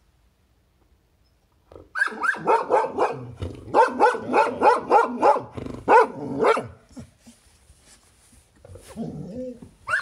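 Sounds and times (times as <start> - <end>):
dog barking: 2.0 - 6.8.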